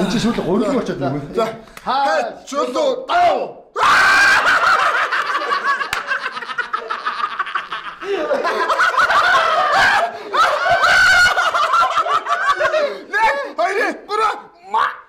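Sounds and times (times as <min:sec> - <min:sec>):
people laughing loudly: 0:03.8 - 0:13.9.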